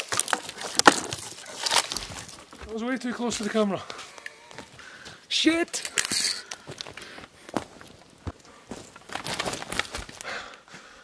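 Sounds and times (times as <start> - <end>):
twigs snapping underfoot: 0.0 - 2.6, 6.0 - 10.3
footsteps on dry needles and twigs: 0.0 - 10.3.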